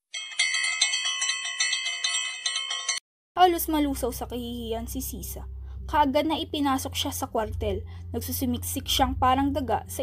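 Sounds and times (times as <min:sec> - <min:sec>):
church bells ringing rapidly: 0:00.1 - 0:03.0.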